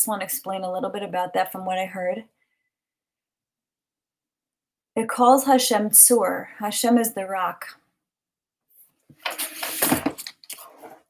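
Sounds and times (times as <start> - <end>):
papers rustling: 9.1 - 11.0.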